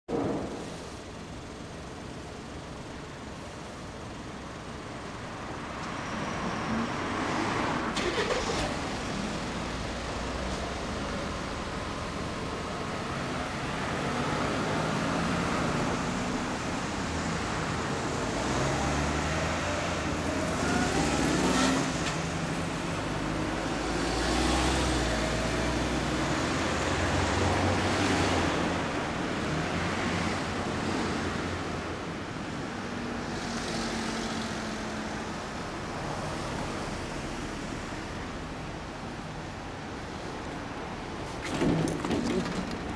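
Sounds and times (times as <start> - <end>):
vehicles passing: 0.1 - 42.9.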